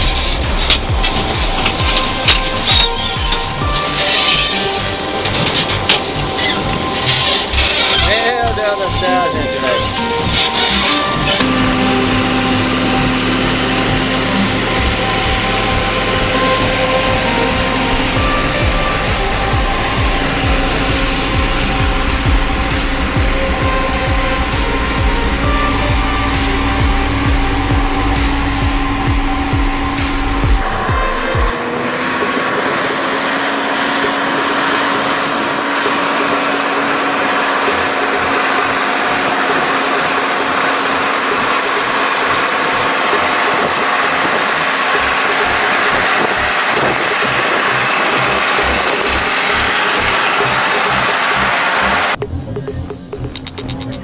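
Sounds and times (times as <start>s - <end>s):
diesel truck engines running: 0.0s - 54.0s.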